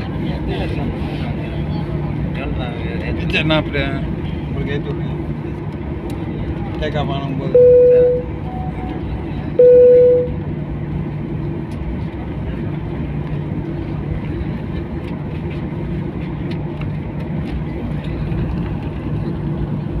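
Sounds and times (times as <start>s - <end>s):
airplane cabin engine hum: 0.0s - 20.0s
loud steady beep: 7.5s - 8.9s, 9.6s - 10.4s.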